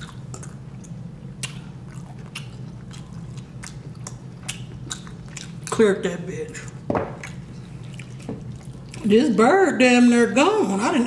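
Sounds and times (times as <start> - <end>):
chewing with wet mouth smacks: 0.0 - 5.9, 6.5 - 9.2
steady low hum: 0.0 - 11.0.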